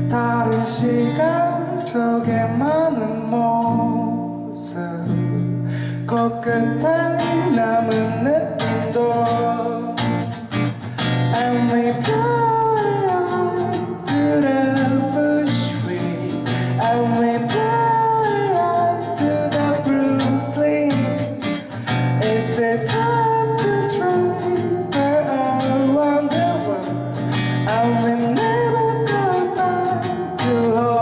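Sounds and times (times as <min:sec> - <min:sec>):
man singing: 0:00.0 - 0:31.0
strummed acoustic guitar: 0:00.0 - 0:31.0.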